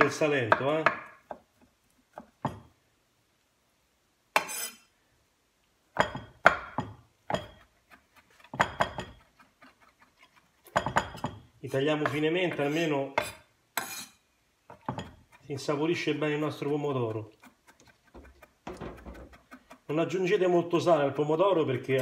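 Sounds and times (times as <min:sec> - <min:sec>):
knife scraping board: 0:04.4 - 0:04.9, 0:07.4 - 0:10.7, 0:12.0 - 0:15.4
knife chopping on wooden board: 0:06.0 - 0:09.4, 0:17.4 - 0:19.9.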